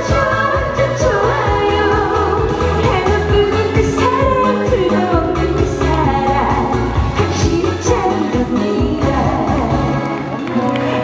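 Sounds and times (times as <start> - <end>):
dance backing track with bass beat: 0.0 - 11.0
woman singing into microphone: 0.0 - 11.0.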